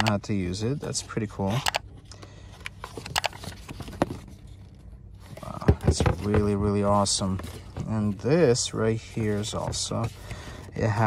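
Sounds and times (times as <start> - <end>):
faint low hum: 0.0 - 11.0
paper pages rustling: 2.8 - 6.6.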